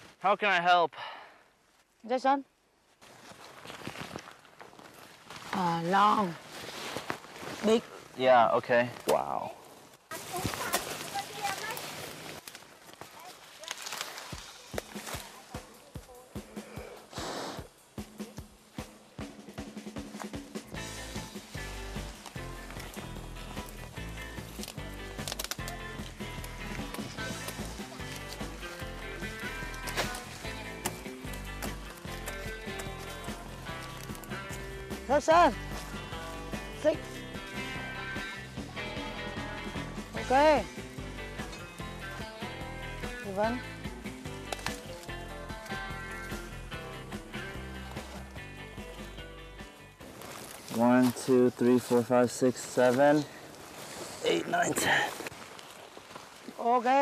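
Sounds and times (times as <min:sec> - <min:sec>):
cane stalks rustling and snapping: 0:08.9 - 0:15.9, 0:21.4 - 0:35.0, 0:44.0 - 0:46.5, 0:50.0 - 0:57.0
background music with steady beat: 0:14.8 - 0:51.0.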